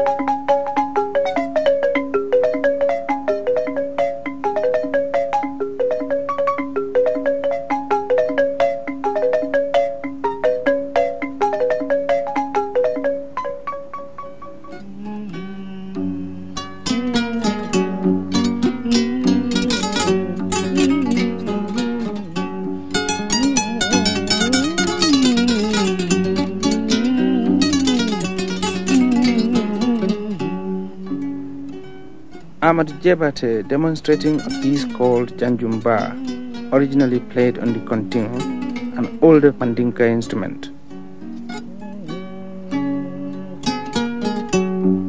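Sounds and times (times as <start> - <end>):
kora plucked in rapid runs: 0.0 - 15.6, 16.3 - 45.0
wooden xylophone playing: 0.0 - 45.0
person singing: 14.6 - 45.0.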